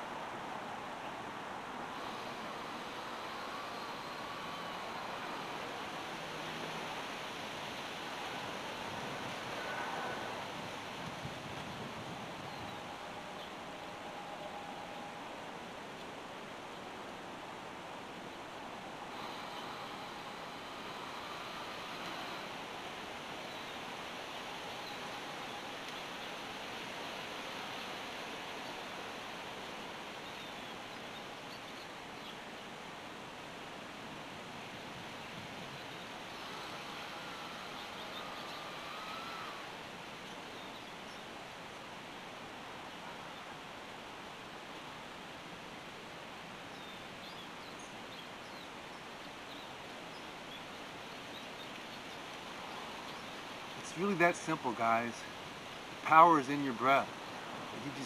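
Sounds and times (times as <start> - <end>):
outdoor background hiss: 0.0 - 58.0.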